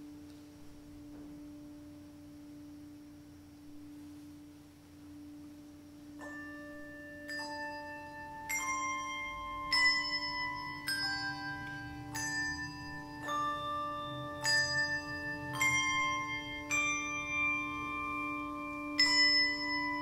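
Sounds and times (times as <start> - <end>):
steady hum: 0.0 - 20.0
handbells ringing: 6.2 - 20.0.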